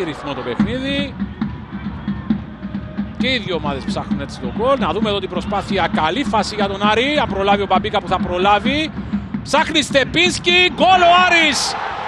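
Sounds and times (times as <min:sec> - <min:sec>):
drum beating quickly: 0:00.5 - 0:11.6.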